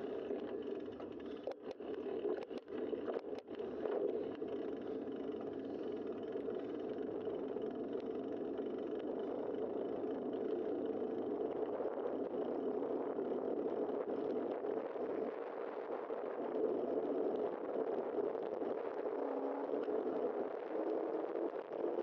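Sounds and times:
bicycle tyres rolling on pavement: 0:00.0 - 0:22.0.

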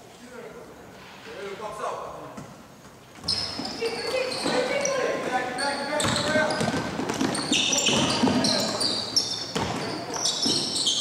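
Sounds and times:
sneakers squeaking on wood: 0:03.1 - 0:11.0.

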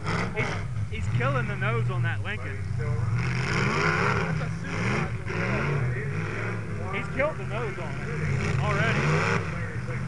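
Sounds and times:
car engines revving hard: 0:00.0 - 0:10.0.

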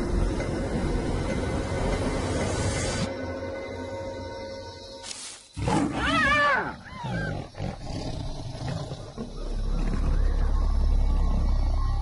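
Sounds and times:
wavering animal cries: 0:05.6 - 0:07.5
lion snarling: 0:06.9 - 0:10.2.

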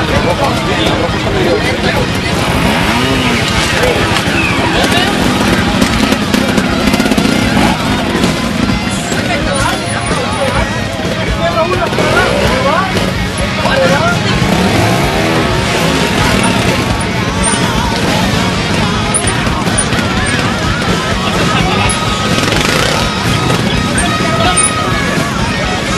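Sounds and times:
motorcycle engine revving: 0:00.0 - 0:25.9
spectators shouting: 0:00.0 - 0:25.9.

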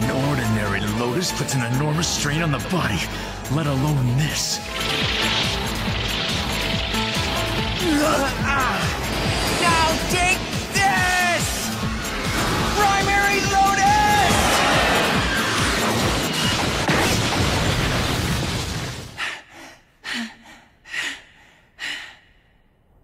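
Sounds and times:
dramatic music: 0:00.0 - 0:19.1.

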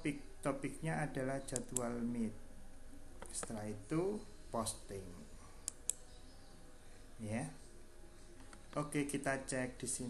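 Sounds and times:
computer mouse clicking: 0:05.6 - 0:06.0.

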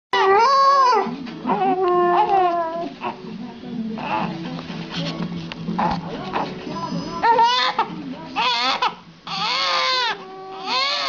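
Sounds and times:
dog whining and howling: 0:00.1 - 0:03.0, 0:08.4 - 0:11.0
baby crying: 0:07.2 - 0:11.0.

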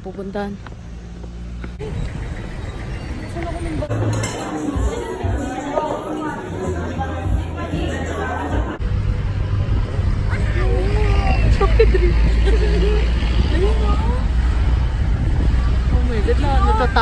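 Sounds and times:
voices talking: 0:00.0 - 0:08.8, 0:10.1 - 0:17.0
car engine and road noise: 0:00.0 - 0:17.0.

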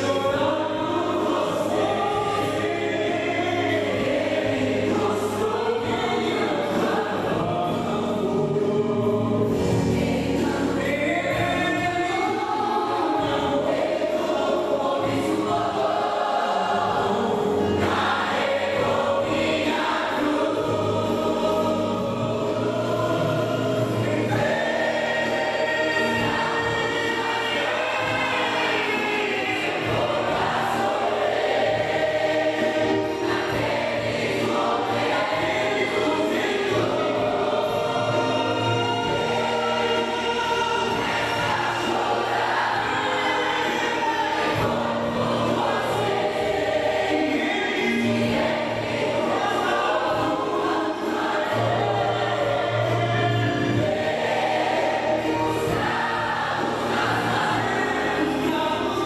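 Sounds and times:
mixed choir singing gospel: 0:00.0 - 0:59.0.

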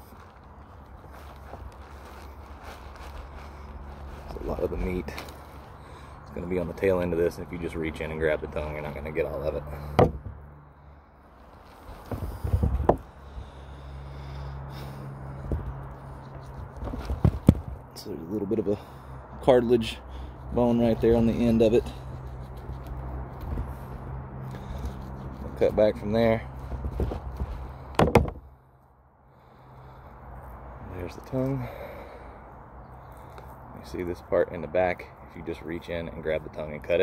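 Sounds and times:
background hum and hiss: 0:00.0 - 0:37.0
rustling and knocks: 0:09.8 - 0:10.4, 0:11.6 - 0:13.1, 0:15.4 - 0:17.8, 0:26.6 - 0:28.5
sharp knocks: 0:09.9 - 0:10.4, 0:27.9 - 0:28.5.

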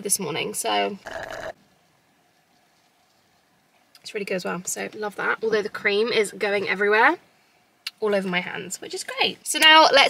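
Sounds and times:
slurping through a straw: 0:01.0 - 0:01.6.

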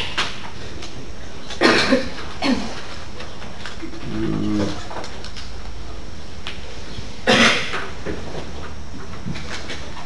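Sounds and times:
man coughing: 0:01.6 - 0:02.8, 0:07.2 - 0:07.8
man humming low: 0:03.9 - 0:04.9.

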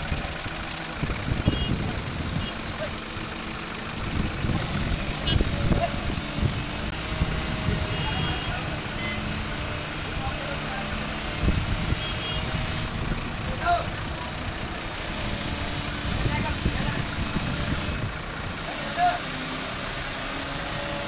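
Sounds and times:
diesel crane engine running: 0:00.0 - 0:21.0.

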